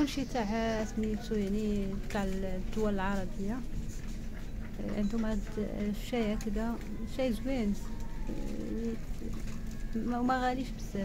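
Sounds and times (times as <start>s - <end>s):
woman speaking: 0.0s - 3.8s, 4.7s - 11.0s
woman humming: 5.8s - 10.7s.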